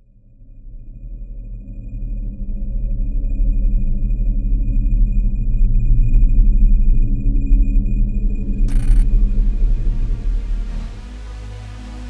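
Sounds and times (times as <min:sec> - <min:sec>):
low rumbling drone: 0:00.6 - 0:12.0
short blips: 0:08.7 - 0:09.0
high pulsing tone: 0:08.7 - 0:09.8.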